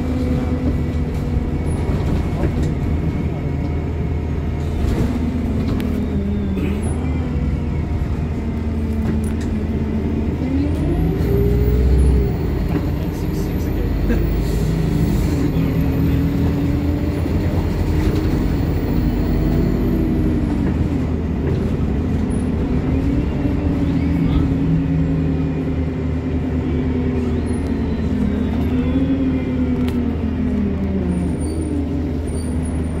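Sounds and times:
bus engine drone: 0.0 - 33.0.

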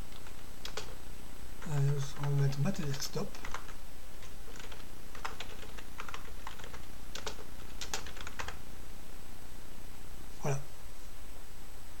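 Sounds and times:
computer keyboard keys clicking: 0.1 - 1.0, 1.7 - 3.8, 4.5 - 8.6.

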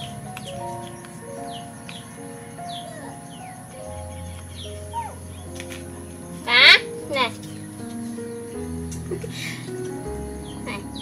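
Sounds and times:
background music with held notes: 0.0 - 11.0.

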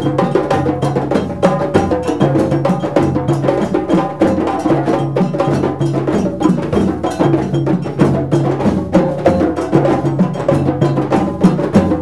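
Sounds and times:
bass drums: 0.0 - 12.0
djembe drumming: 0.0 - 12.0.

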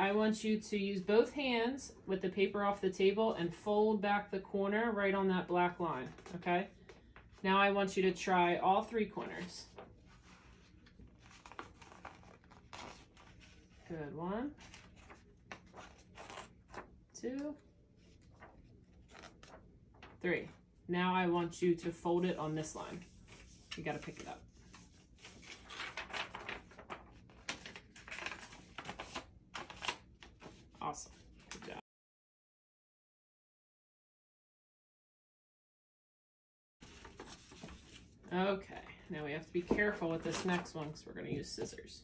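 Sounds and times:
paper rustling and crinkling: 9.2 - 13.9, 14.5 - 16.9, 18.0 - 20.2, 22.3 - 31.8, 36.8 - 38.3, 39.5 - 41.8.

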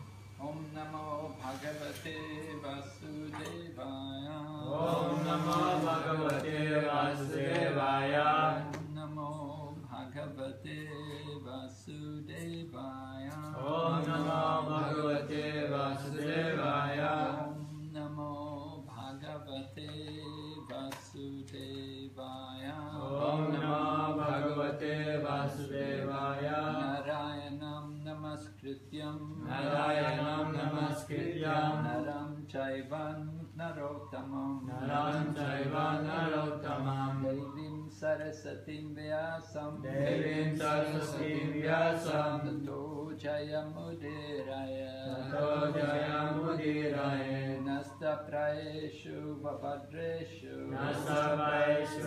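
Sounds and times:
steady low hum: 0.0 - 47.6
person chanting a prayer: 0.4 - 52.0.

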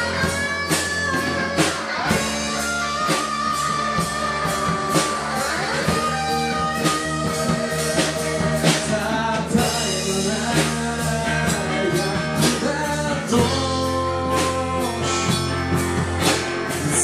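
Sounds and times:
bass guitar: 0.0 - 17.0
distorted electric guitars: 0.0 - 17.0
drum kit hits: 0.0 - 17.0.

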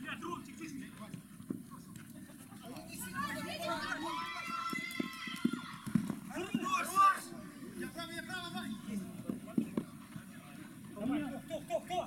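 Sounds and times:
players shouting: 2.9 - 8.9.

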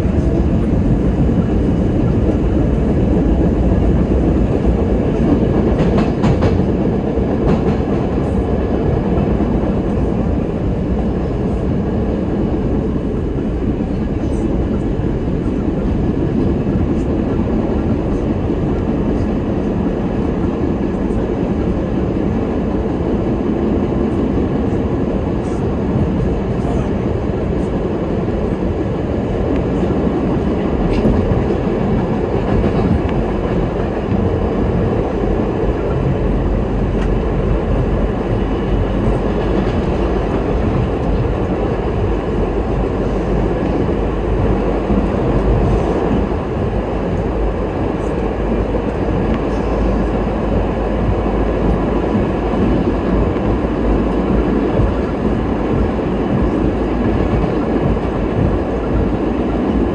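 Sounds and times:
subway car wheels rumbling on rail: 0.0 - 59.9.

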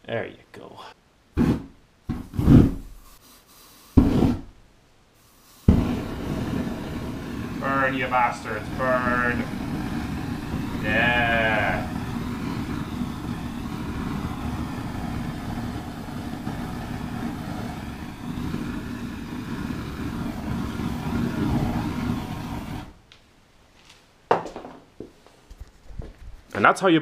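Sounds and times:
aerosol spray burning: 1.4 - 4.5, 5.2 - 23.0
knock: 24.3 - 24.8.

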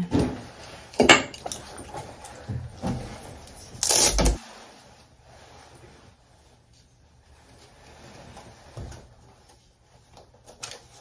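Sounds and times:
rustling scrape: 0.2 - 11.0.

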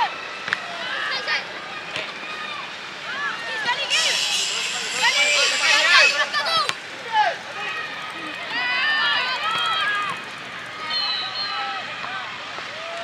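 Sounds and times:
high voices shouting: 0.0 - 13.0.

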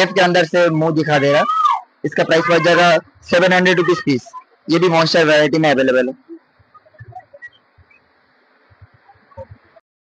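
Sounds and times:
background hiss: 0.0 - 9.8
faint blips: 6.1 - 9.8.

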